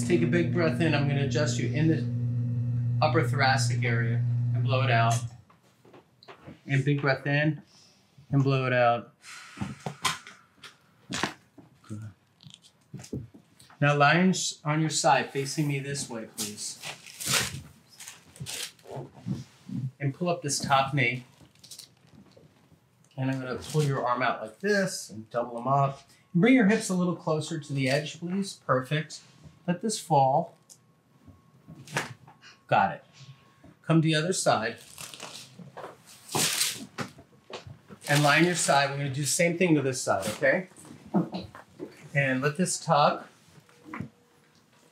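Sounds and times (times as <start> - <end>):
spine joints cracking: 21.2 - 22.8.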